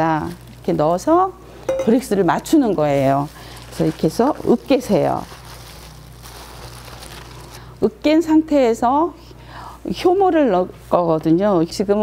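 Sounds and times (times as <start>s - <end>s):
woman speaking: 0.0s - 5.3s, 7.8s - 9.2s, 9.8s - 12.0s
wet squishing of strawberries: 2.8s - 7.6s.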